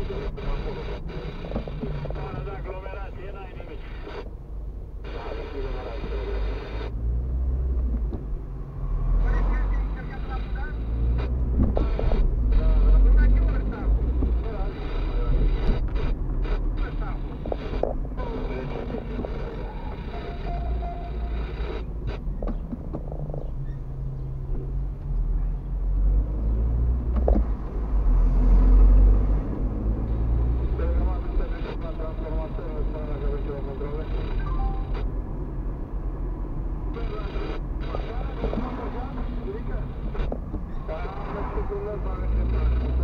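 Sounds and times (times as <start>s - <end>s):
car engine and road rumble: 0.0s - 43.0s.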